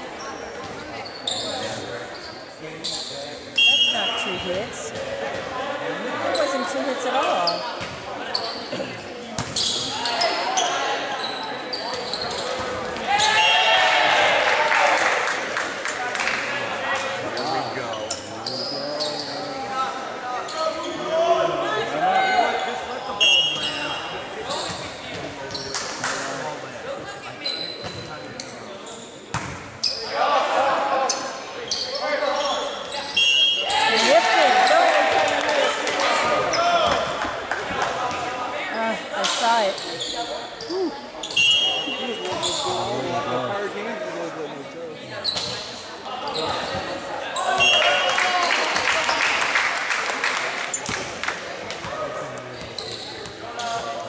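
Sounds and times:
players and spectators shouting: 12.9 - 15.2, 33.2 - 37.2.

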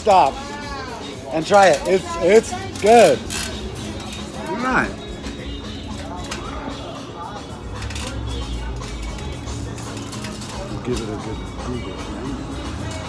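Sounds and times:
background music: 0.0 - 13.0
passing street traffic rumble: 0.0 - 13.0.

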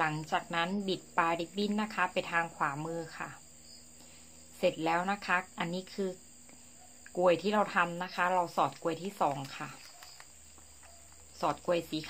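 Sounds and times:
woman speaking: 0.0 - 3.4, 4.6 - 6.2, 7.1 - 10.2, 11.4 - 12.0.

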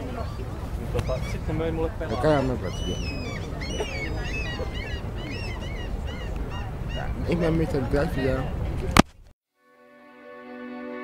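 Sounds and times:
birds calling in short high calls: 2.1 - 7.5.

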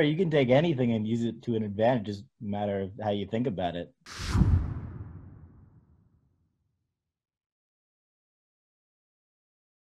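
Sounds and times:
deep boom: 4.1 - 6.0
whoosh transition effect: 4.1 - 6.0.

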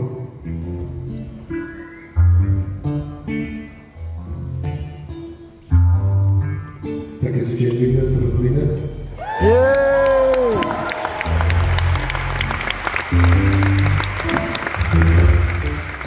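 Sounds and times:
loud low bass notes: 11.4 - 16.0.

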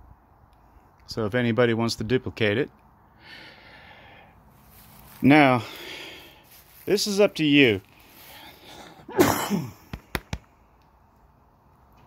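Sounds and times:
man sneezing: 8.8 - 9.8.

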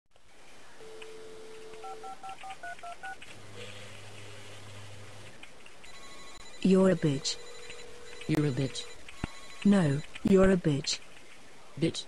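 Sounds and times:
low steady hum: 0.2 - 12.0
keypad beeps: 0.8 - 3.2, 5.8 - 10.3
telephone dial tone: 0.8 - 3.2.

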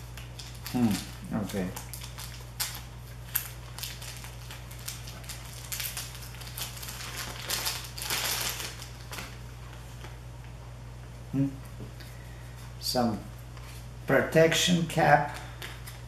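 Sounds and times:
plastic bag crinkling: 0.0 - 9.4
low steady hum: 0.0 - 16.0.

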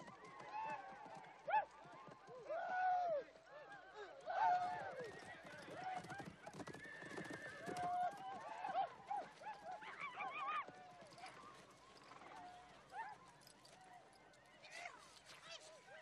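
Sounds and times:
horses whinnying: 4.6 - 8.8.

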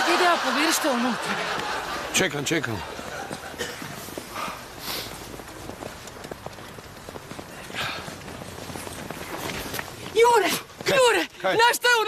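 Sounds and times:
footsteps on snow: 1.2 - 12.0
short breathy hiss: 4.4 - 5.1.

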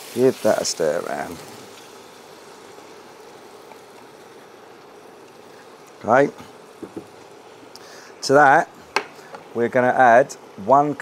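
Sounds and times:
ketchup hissing in a frying pan: 0.0 - 11.0.

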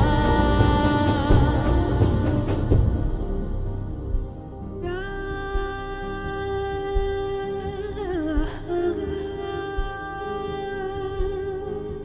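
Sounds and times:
woman singing long wordless note: 0.0 - 4.2, 4.8 - 12.0
low soft beats: 0.0 - 12.0.

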